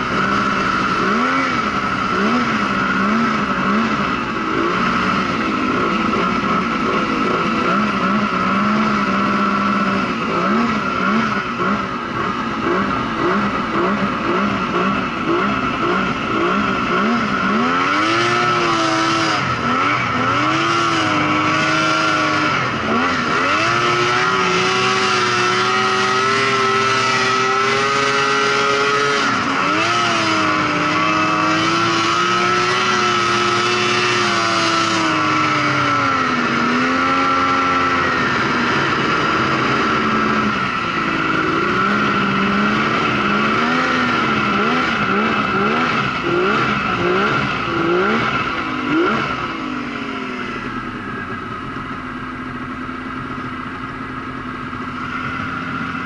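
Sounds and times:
snowmobile engine revving: 0.0 - 56.0
steady high whine: 0.0 - 56.0.

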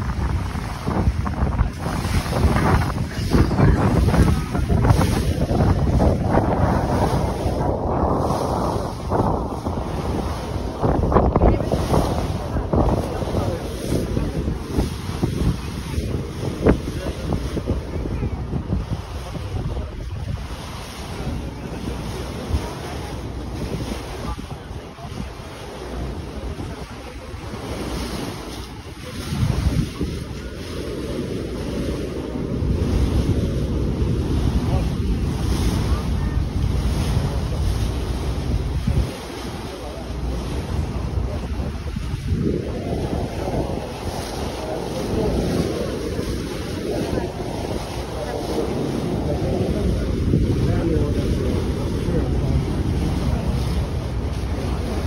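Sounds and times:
water rushing past hull: 0.0 - 55.0
wind buffeting microphone: 0.0 - 55.0.

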